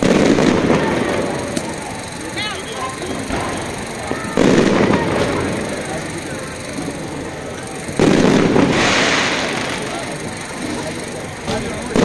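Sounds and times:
firework shell booming: 0.0s - 2.0s, 3.1s - 7.2s, 7.8s - 12.0s
firework glitter crackling: 0.0s - 12.0s.

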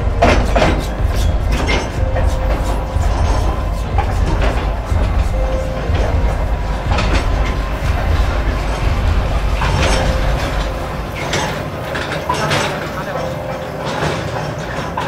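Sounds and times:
rail car rumbling: 0.0s - 15.0s.

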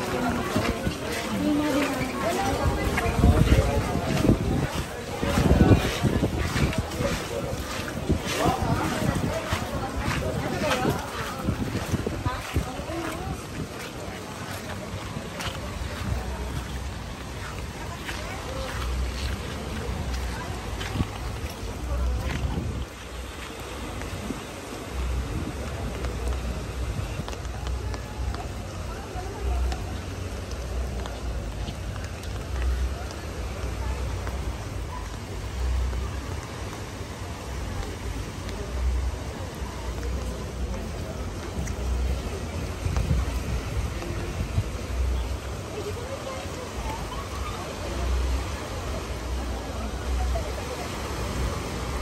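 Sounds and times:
drips and splashes: 0.0s - 52.0s
indistinct voices: 0.0s - 52.0s
rain: 0.0s - 52.0s
water running through sand channel: 0.0s - 52.0s
wind on microphone: 0.0s - 52.0s.

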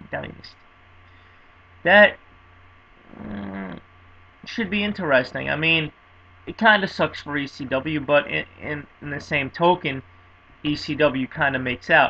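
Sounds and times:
man speaking: 0.0s - 0.5s, 1.9s - 2.2s, 4.4s - 5.9s, 6.5s - 10.0s, 10.7s - 12.0s
faint electrical hum: 0.0s - 12.0s.

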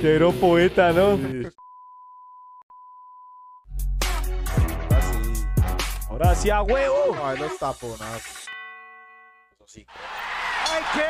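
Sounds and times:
man shouting excitedly: 10.6s - 11.0s.

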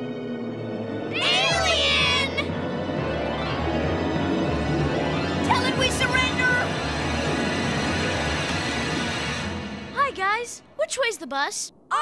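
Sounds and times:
dramatic background music: 0.0s - 11.0s.

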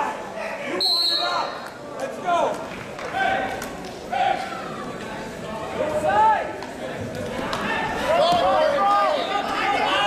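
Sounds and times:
people calling out in a gym: 0.0s - 2.5s, 3.1s - 5.0s, 7.6s - 10.0s.

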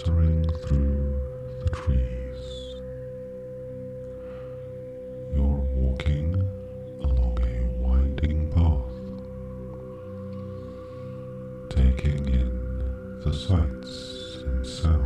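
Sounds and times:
soft meditation drone music: 0.0s - 15.0s.

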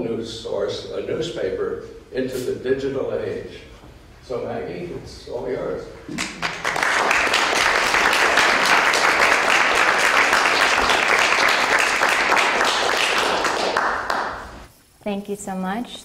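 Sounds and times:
audience applauding: 6.1s - 14.6s.

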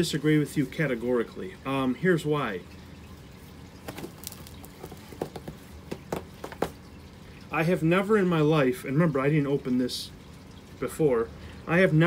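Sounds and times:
adhesive crackling as leather peels: 3.9s - 5.5s.

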